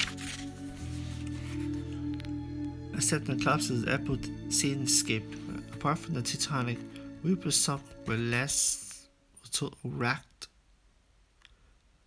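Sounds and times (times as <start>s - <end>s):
person speaking: 2.9s - 10.6s.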